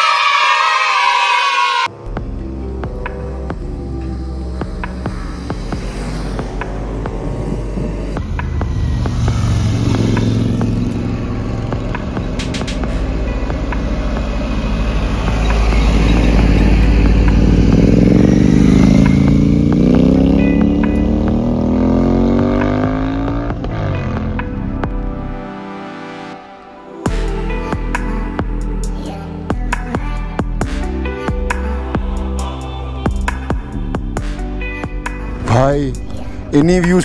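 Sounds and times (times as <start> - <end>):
car passing: 0.0 - 27.0
heavy truck passing: 0.2 - 26.5
motorcycle engine accelerating: 1.9 - 25.5.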